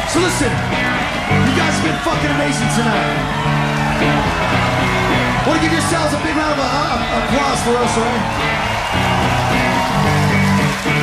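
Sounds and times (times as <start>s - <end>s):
electric guitar chords: 0.0s - 11.0s.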